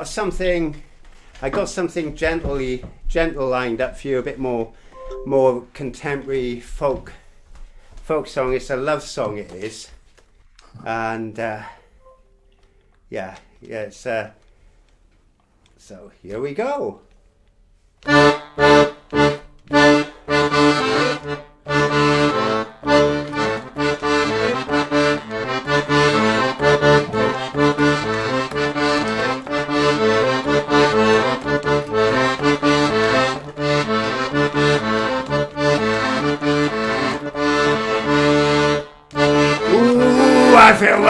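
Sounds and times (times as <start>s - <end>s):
piano accordion playing chords: 4.9s - 5.6s, 18.0s - 41.0s.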